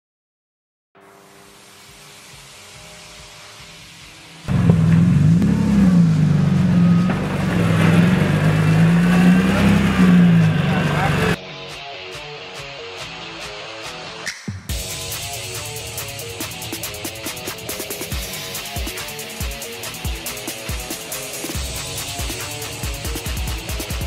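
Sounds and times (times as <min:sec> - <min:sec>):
race car engine revving: 0:01.0 - 0:11.4.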